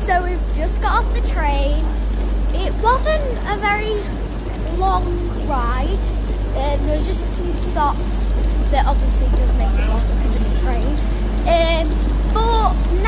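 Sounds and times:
electric train humming: 0:00.0 - 0:13.0.

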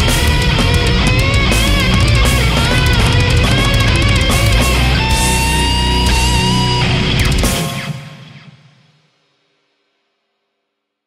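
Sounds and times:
heavy metal band final chord: 0:00.0 - 0:08.7.

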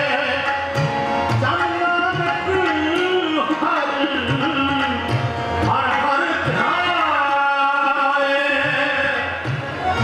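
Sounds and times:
man singing: 0:00.0 - 0:09.6.

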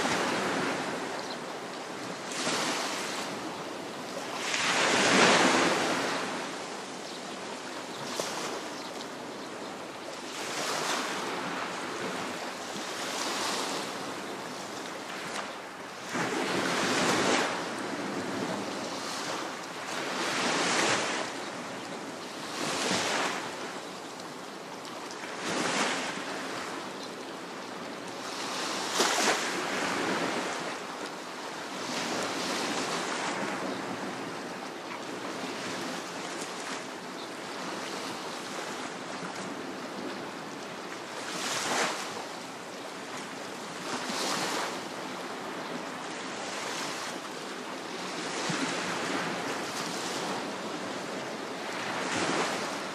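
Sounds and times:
small sea waves breaking: 0:01.8 - 0:09.4, 0:10.2 - 0:21.8, 0:22.4 - 0:23.8, 0:28.2 - 0:52.9.

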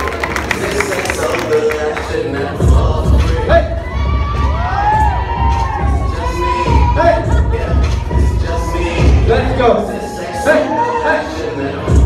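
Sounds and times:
crowd cheering and shouting: 0:00.0 - 0:12.0
song with heavy bass beat: 0:00.1 - 0:12.0.

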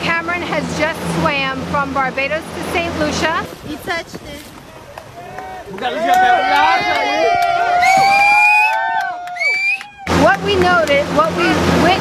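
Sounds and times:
people cheering with whoops: 0:04.9 - 0:10.2.

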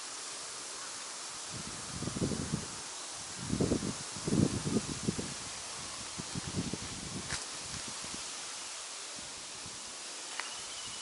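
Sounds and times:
steady wind hiss: 0:00.0 - 0:11.0
wind gusts buffeting microphone: 0:01.3 - 0:08.4.

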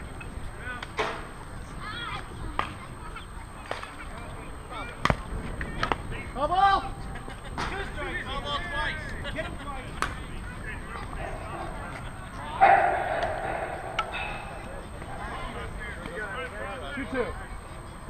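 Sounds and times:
players calling and shouting: 0:00.0 - 0:18.0
sharp knocks: 0:12.6 - 0:15.1.

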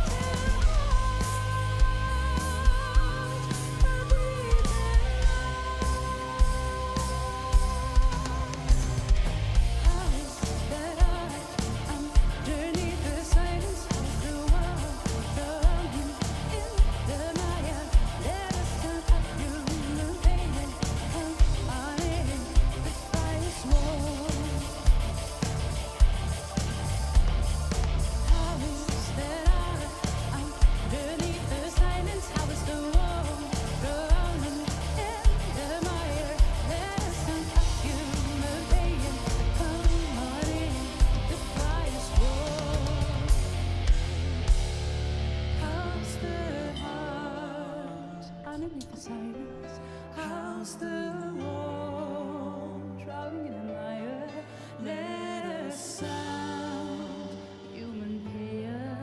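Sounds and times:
woman singing: 0:00.0 - 0:43.6, 0:45.6 - 0:59.0
heavy drum beat: 0:00.0 - 0:45.6
symphonic metal band: 0:00.0 - 0:47.9.

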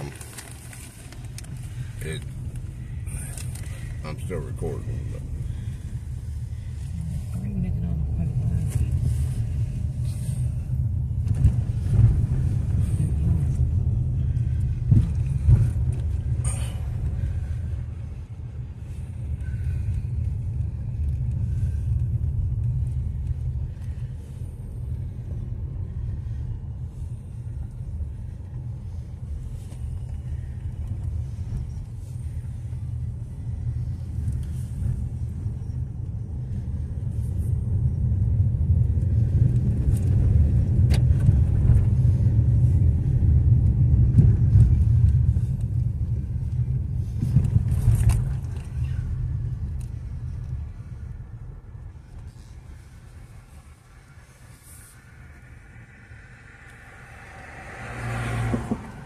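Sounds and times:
car engine and tyres rumble: 0:00.0 - 0:59.0.

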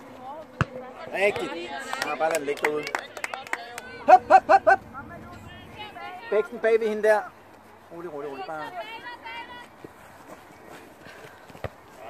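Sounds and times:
distant voices: 0:00.0 - 0:12.0
faint footsteps on grass: 0:05.6 - 0:12.0.

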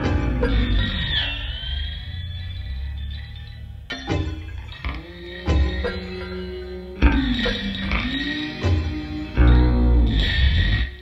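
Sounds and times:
held high musical tone: 0:00.0 - 0:11.0
steady low drone: 0:00.0 - 0:11.0.

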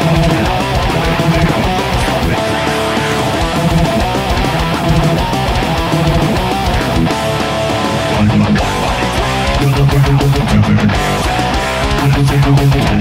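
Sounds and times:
backing track: 0:00.0 - 0:13.0
distorted electric guitar riff: 0:00.0 - 0:13.0.

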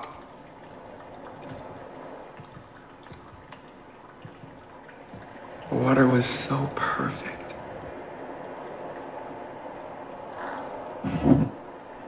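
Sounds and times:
small water drips: 0:00.0 - 0:12.0
water trickling and pouring: 0:00.0 - 0:12.0.

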